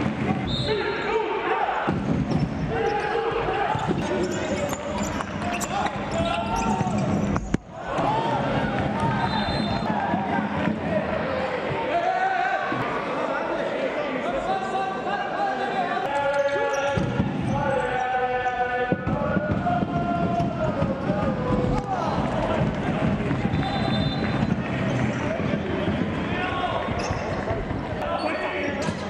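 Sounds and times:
shoes squeaking: 2.4s - 7.7s.

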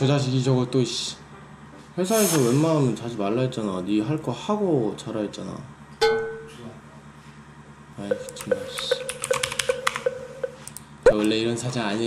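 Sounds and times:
typing on computer keyboard: 8.1s - 10.8s.

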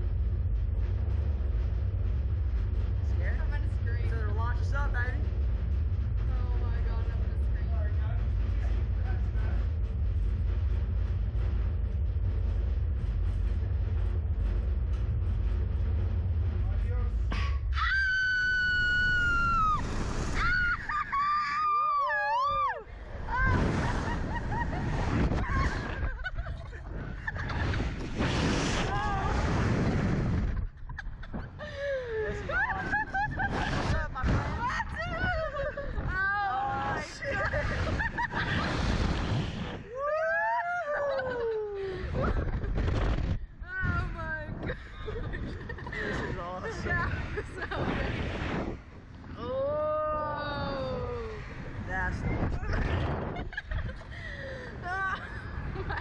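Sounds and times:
low rumble: 0.0s - 56.0s
wind rushing across microphone: 0.0s - 56.0s.

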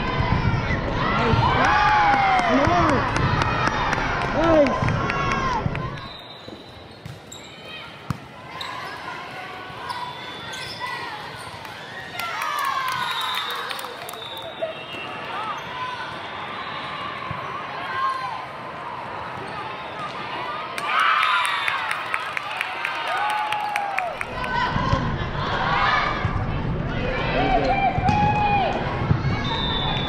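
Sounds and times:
sports hall noise: 0.0s - 30.0s.

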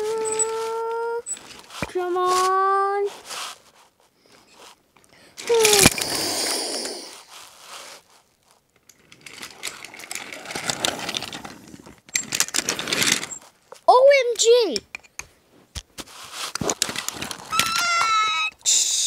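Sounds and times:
child making play sound effects: 0.0s - 1.3s, 1.9s - 3.2s, 5.4s - 7.2s, 13.8s - 14.9s, 17.5s - 19.0s
wooden toys clicking: 5.4s - 7.2s, 8.8s - 13.4s, 14.0s - 15.9s, 16.5s - 18.6s.

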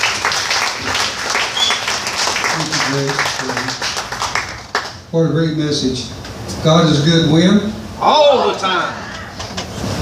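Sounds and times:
crowd clapping: 0.0s - 5.1s.

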